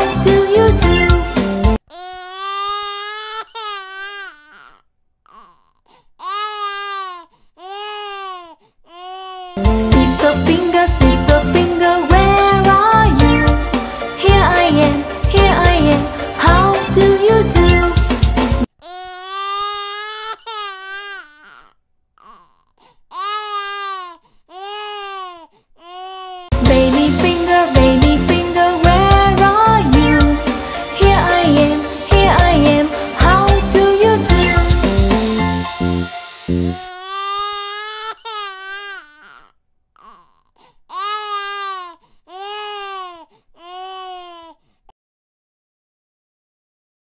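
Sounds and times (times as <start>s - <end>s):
baby crying: 0.8s - 9.6s, 18.8s - 26.6s, 36.6s - 44.6s
faint baby sobs: 1.9s - 9.6s, 18.8s - 26.6s, 36.7s - 44.9s.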